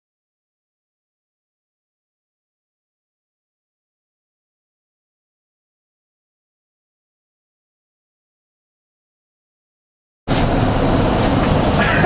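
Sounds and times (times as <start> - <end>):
wind tunnel air rushing: 10.3 - 12.0.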